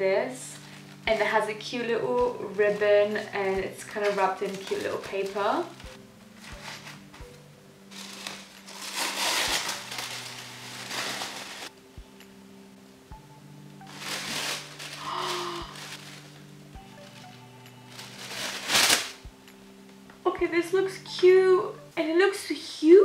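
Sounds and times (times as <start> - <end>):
faint background music: 0.0 - 23.0
wrapping paper rustling: 0.3 - 11.8, 13.7 - 19.3.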